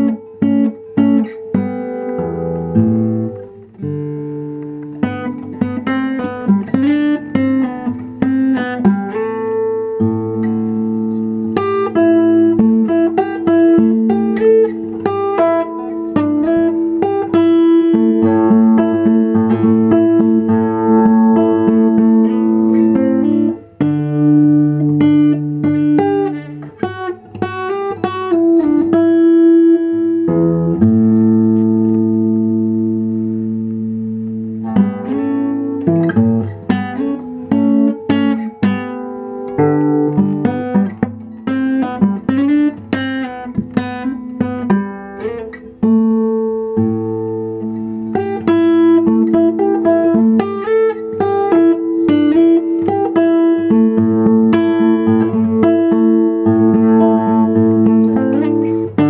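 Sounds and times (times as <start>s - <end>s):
acoustic guitar picking: 0.0s - 59.0s.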